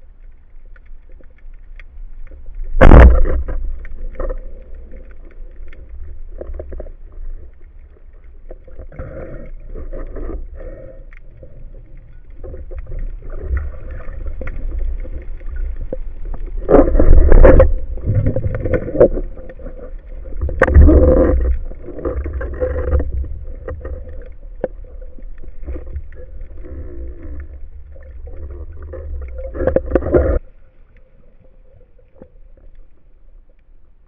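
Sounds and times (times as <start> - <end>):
low rumbling underwater noise: 0.0 - 34.0.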